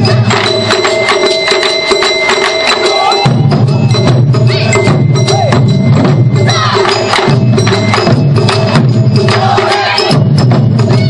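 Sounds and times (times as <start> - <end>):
rapid sharp drum strikes: 0.0 - 11.0
steady high ringing tone: 0.0 - 11.0.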